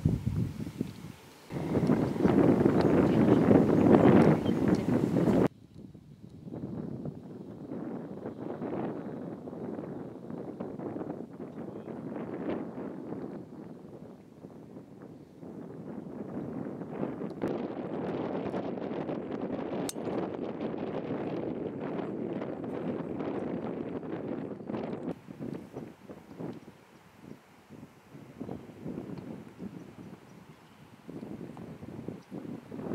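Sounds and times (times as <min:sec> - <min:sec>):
wind buffeting microphone: 0:00.0 - 0:32.9.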